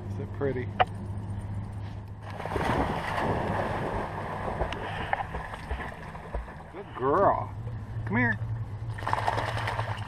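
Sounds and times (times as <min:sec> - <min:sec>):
steady low hum: 0:00.0 - 0:10.0
dog splashing through water: 0:08.9 - 0:10.0.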